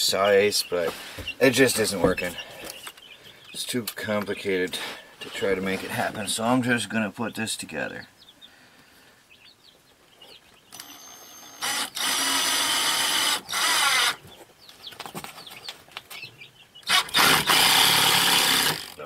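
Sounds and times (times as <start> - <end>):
cordless drill driving screws: 10.7 - 14.2, 16.9 - 19.0.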